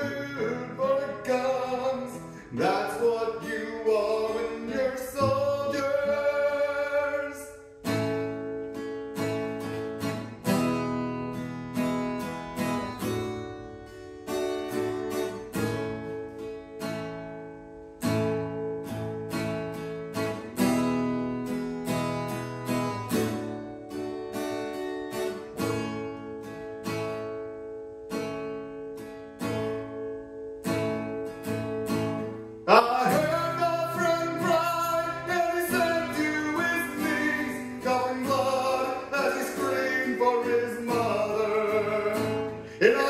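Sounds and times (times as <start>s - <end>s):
acoustic guitar chords: 0.0s - 43.0s.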